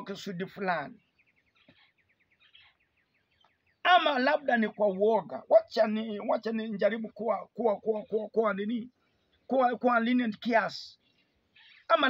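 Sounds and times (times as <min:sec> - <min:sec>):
man's voice: 0:00.0 - 0:01.0, 0:03.8 - 0:11.0
bird chirping: 0:00.0 - 0:12.0.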